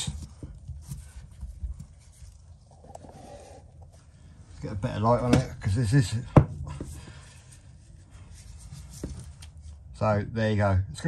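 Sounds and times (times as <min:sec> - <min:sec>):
handling rustle: 0:00.0 - 0:04.2, 0:06.8 - 0:09.9.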